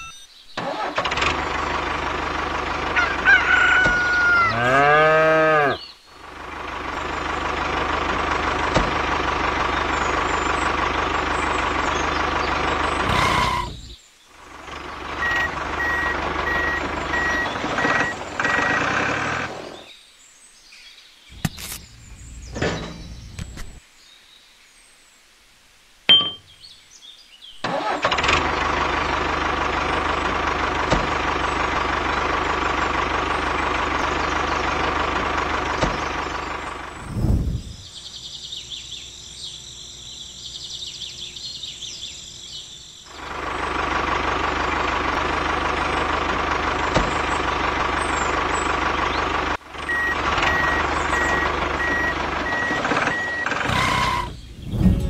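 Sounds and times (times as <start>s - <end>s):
short beeps: 0.0s - 0.3s, 49.9s - 54.2s.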